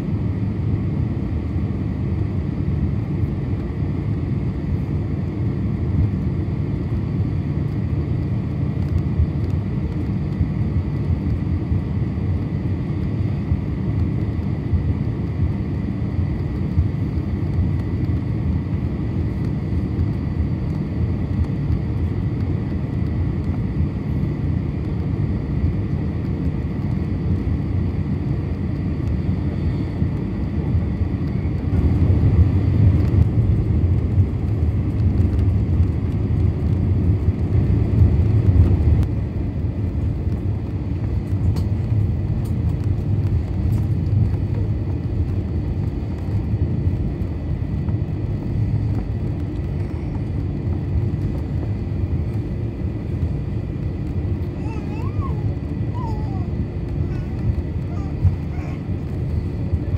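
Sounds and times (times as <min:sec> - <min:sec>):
aircraft cabin low rumble: 0:00.0 - 0:59.9.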